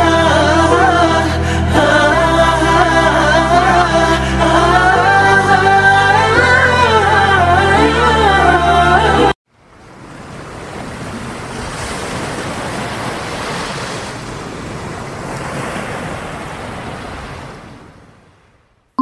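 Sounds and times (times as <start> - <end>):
ocean waves washing on shore: 9.5 - 18.8.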